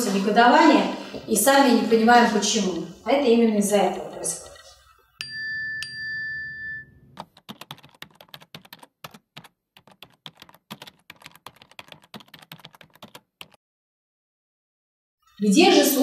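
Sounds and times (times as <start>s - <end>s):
bright chime: 5.2s - 7.1s
keyboard typing clicks: 7.2s - 13.6s.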